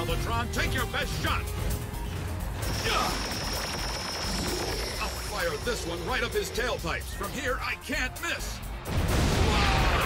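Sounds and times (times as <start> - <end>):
low background score: 0.0 - 10.0.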